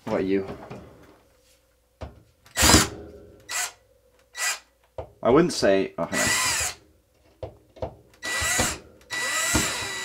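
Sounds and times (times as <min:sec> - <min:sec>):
power drill bursts: 0:02.5 - 0:02.9, 0:03.5 - 0:03.8, 0:04.4 - 0:04.6, 0:06.2 - 0:06.8, 0:08.2 - 0:10.0.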